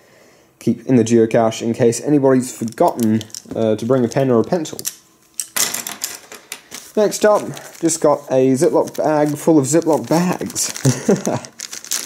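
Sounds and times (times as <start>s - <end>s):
plastic pens clattering on wooden desk: 5.4s - 6.8s.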